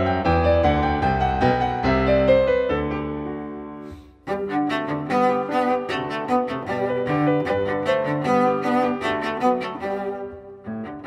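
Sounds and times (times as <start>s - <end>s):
piano accompaniment: 0.0s - 11.0s
bowed cello run: 3.9s - 11.0s.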